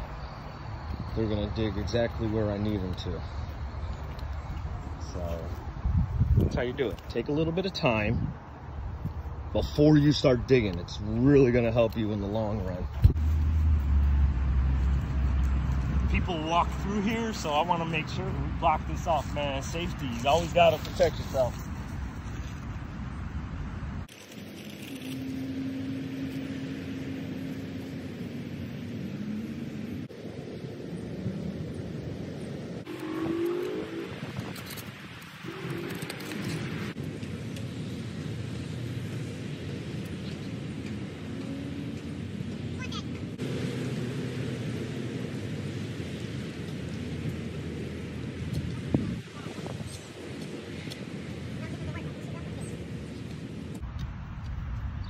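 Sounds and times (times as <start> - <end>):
passing traffic: 0.0 - 55.0
wind: 0.0 - 55.0.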